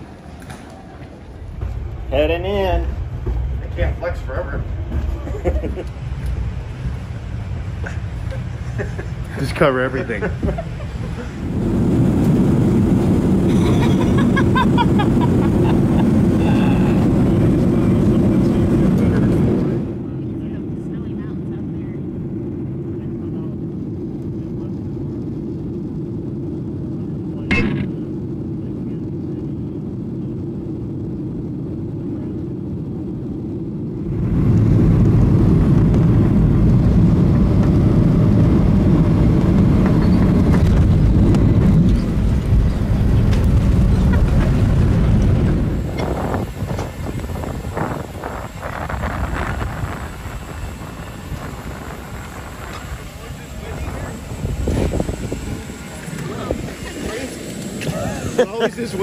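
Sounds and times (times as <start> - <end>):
airliner cabin rumble: 0.0 - 59.0.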